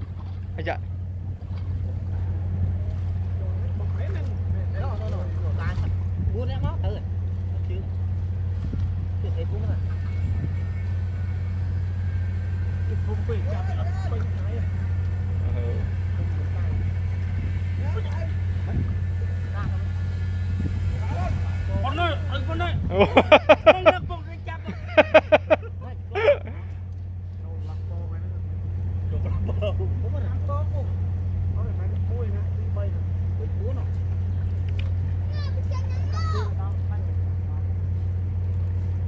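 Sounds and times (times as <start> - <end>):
pump engine droning: 0.0 - 39.0.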